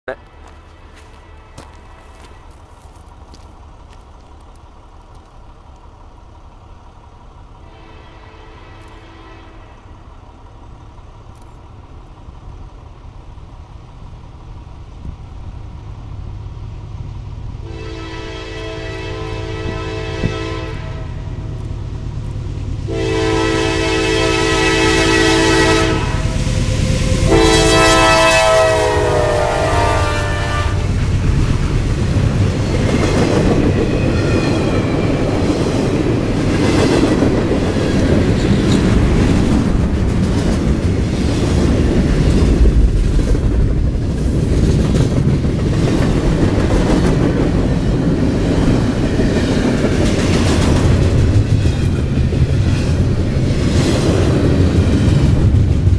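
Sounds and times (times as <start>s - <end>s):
train engine and wheels rumbling: 0.0s - 55.9s
locomotive air horn blasts: 0.6s - 2.7s, 7.6s - 10.0s, 17.6s - 21.5s, 22.9s - 30.9s.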